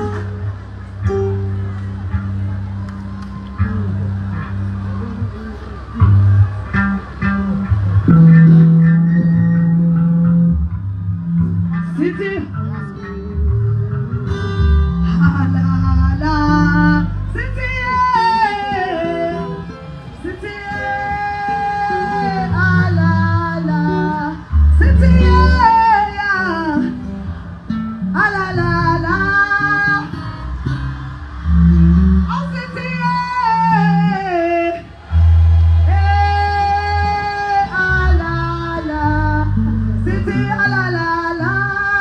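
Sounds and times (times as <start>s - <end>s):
bass guitar notes: 0.0s - 42.0s
guitar: 0.0s - 42.0s.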